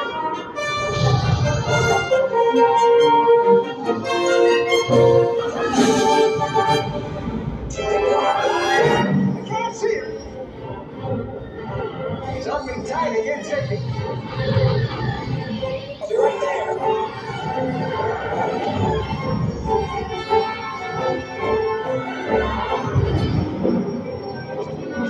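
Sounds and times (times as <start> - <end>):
symphony orchestra playing: 0.0 - 14.2, 15.8 - 25.0.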